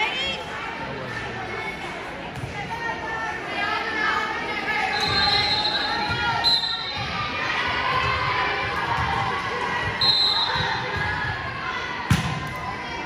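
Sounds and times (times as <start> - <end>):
crowd chatter: 0.0 - 13.0
referee's whistle blasts: 4.9 - 7.0, 10.0 - 10.8.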